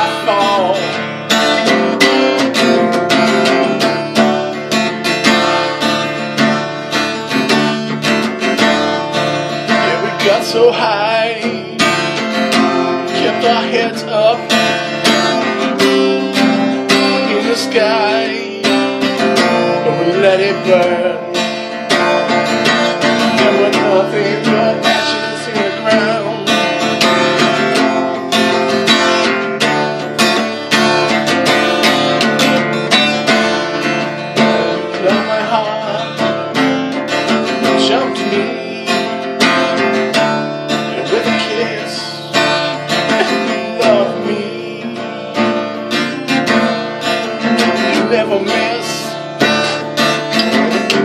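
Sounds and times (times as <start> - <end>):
acoustic guitar strumming chords: 0.0 - 51.0.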